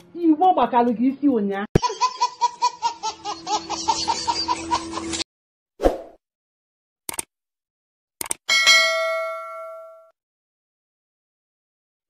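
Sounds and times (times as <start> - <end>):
notification bell ding: 8.5 - 10.1.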